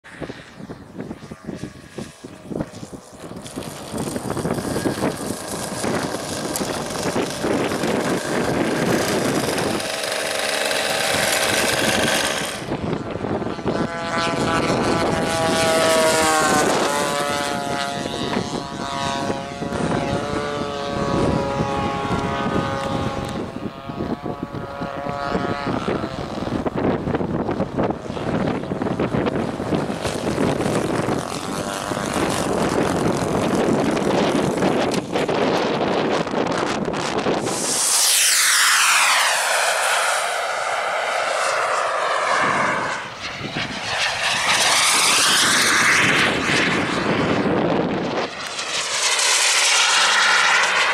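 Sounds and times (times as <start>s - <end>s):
model airplane engine droning: 0.0s - 50.9s
wind buffeting microphone: 0.0s - 50.9s.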